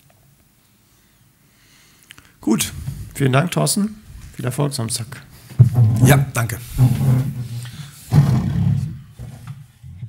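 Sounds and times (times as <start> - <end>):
chair scraping on floor: 5.5 - 10.0.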